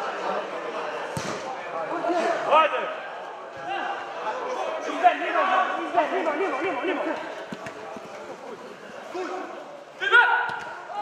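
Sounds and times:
voices calling and shouting: 1.0 - 11.0.

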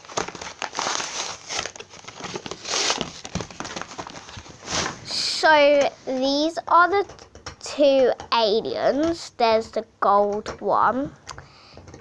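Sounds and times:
plastic packaging crinkling: 0.0 - 5.0.

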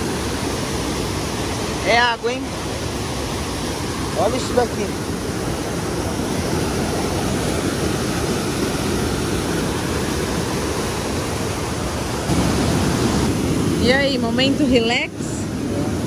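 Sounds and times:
water rushing over rocks: 0.0 - 16.0.

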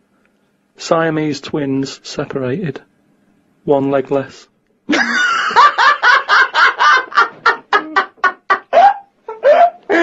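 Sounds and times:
laughter in short bursts: 6.6 - 10.0.

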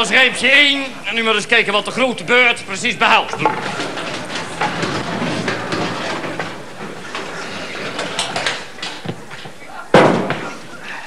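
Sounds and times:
voices: 0.0 - 11.0
knocks and clatters: 3.2 - 10.6.

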